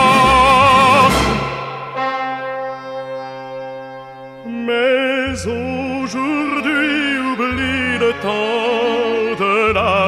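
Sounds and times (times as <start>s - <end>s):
sustained brass chord: 0.1s - 5.7s
held note with vibrato: 0.1s - 5.8s.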